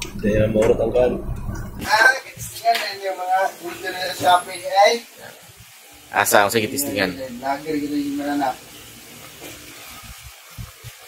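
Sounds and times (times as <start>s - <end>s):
steady background hiss: 1.8s - 11.0s.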